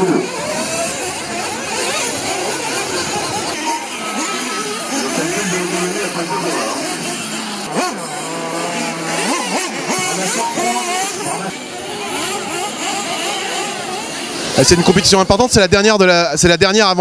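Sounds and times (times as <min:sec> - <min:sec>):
radio-controlled cars buzzing: 0:00.0 - 0:17.0.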